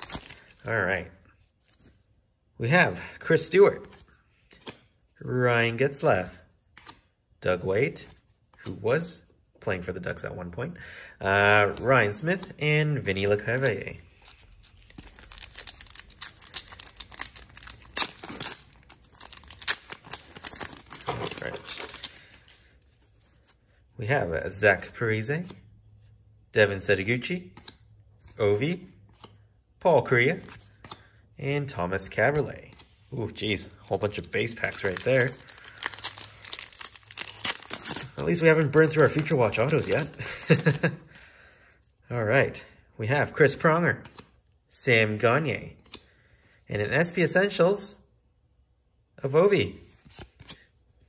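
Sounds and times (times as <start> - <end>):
foil wrapper tearing and crinkling: 14.8 - 22.3, 34.4 - 40.7
foil wrapper crinkling: 34.4 - 40.8.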